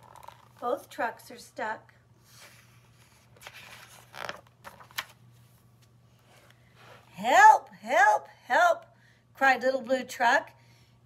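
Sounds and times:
paper pages rustling: 0.0s - 0.7s, 2.3s - 6.6s.

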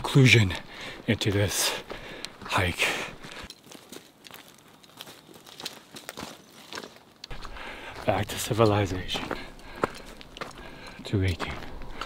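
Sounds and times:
boots crunching on gravel: 0.1s - 12.0s.

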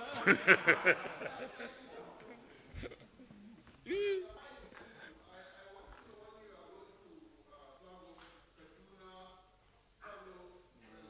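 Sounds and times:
man laughing: 0.0s - 1.8s.

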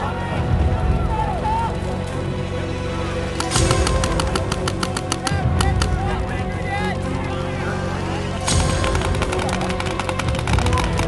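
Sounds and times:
background music: 0.0s - 11.0s
paintball markers firing rapidly: 3.4s - 6.0s, 8.6s - 11.0s.

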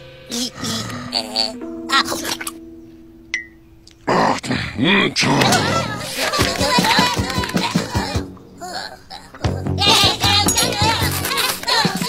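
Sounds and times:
held low note: 0.0s - 4.4s.

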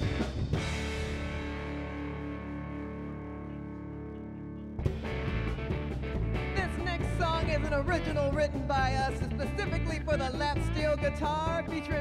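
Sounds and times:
blues band with drums and bass: 0.0s - 12.0s
lap steel guitar chord: 0.5s - 7.2s.

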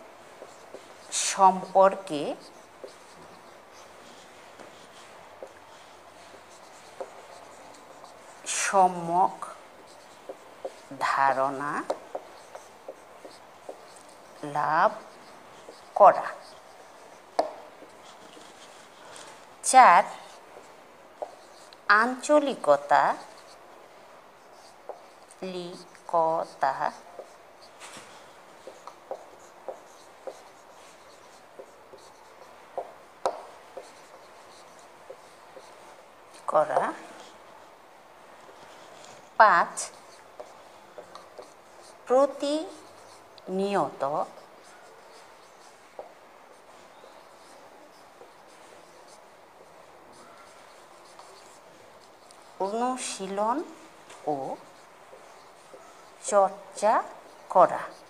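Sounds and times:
marker pen scratching on whiteboard: 0.0s - 58.0s
woman drawing out a word: 0.3s - 23.6s, 24.4s - 35.8s, 36.4s - 37.6s, 38.7s - 51.6s, 52.2s - 58.0s.

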